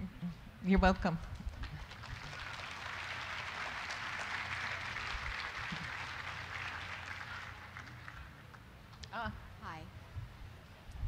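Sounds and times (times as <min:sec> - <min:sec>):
audience applauding: 0:01.5 - 0:08.4.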